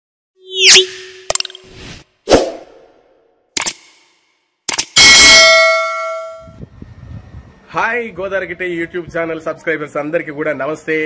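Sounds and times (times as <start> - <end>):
rattle of sharp clicks: 3.6 - 5.0.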